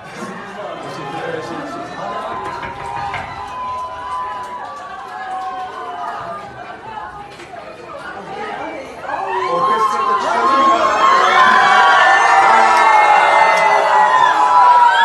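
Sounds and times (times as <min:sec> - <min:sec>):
crowd cheering and screaming: 0:00.1 - 0:07.2, 0:09.0 - 0:15.0.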